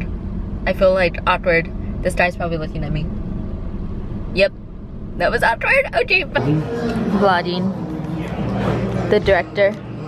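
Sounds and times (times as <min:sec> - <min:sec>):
car idling rumble: 0:00.0 - 0:10.0.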